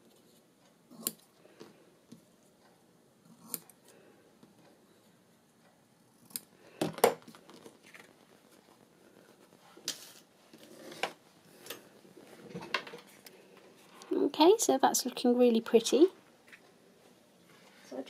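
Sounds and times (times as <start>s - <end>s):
scissors snipping ribbon: 0.9s - 1.3s.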